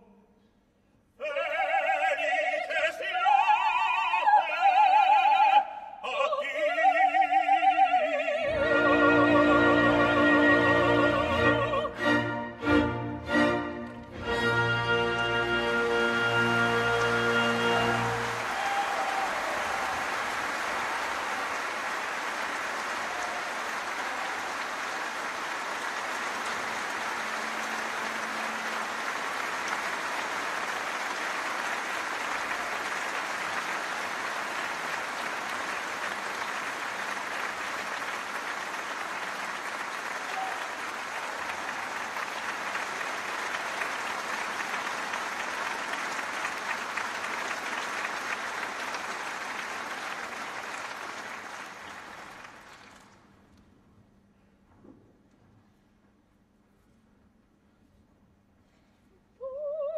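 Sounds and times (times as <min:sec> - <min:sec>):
audience applauding: 0:13.4 - 0:53.6.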